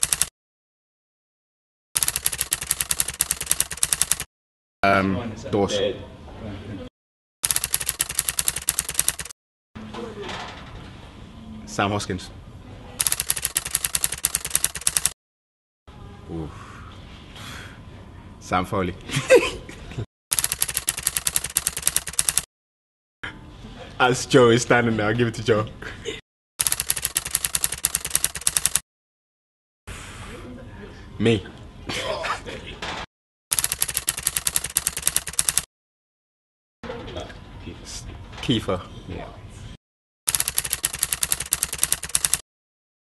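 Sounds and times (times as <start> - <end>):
rapid typewriter clicks: 0.0 - 0.3, 2.0 - 4.3, 7.4 - 9.4, 13.0 - 15.2, 20.3 - 22.5, 26.6 - 28.8, 33.5 - 35.7, 40.3 - 42.4.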